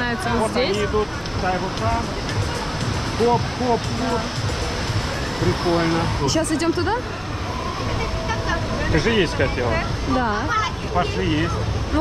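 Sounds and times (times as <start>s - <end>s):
outdoor background noise: 0.0s - 12.0s
man speaking: 0.3s - 2.4s, 3.1s - 4.4s.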